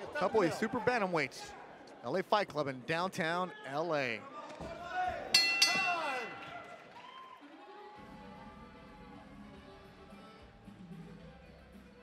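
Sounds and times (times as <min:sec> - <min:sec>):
boxing ring bell: 0:05.4 - 0:06.7.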